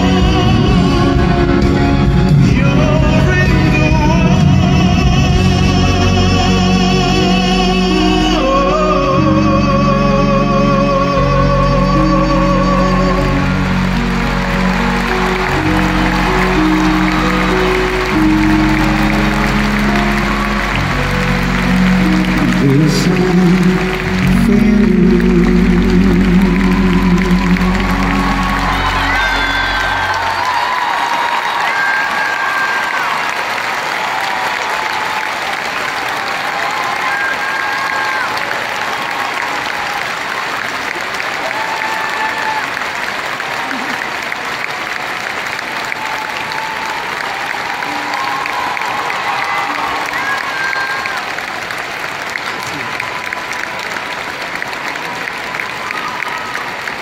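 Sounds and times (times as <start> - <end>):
live band playing: 0.0 - 7.9, 12.0 - 32.7
audience applauding and cheering: 0.0 - 57.0.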